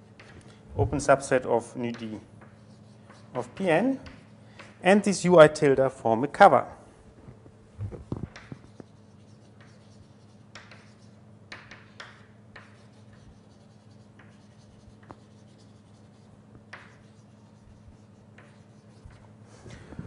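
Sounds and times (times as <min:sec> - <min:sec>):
faint room hum: 0:00.0 - 0:20.0
chalk writing on blackboard: 0:01.9 - 0:04.8, 0:08.3 - 0:19.3.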